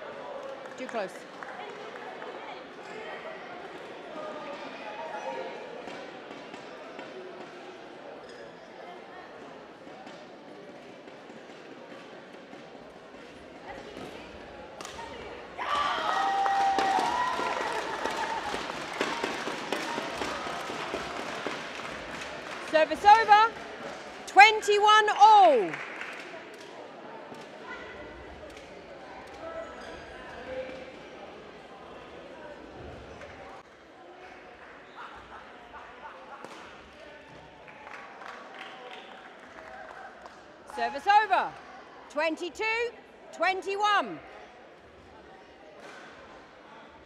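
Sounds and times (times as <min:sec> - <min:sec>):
crowd noise: 0:00.0 - 0:47.0
loud shouts: 0:15.6 - 0:20.8.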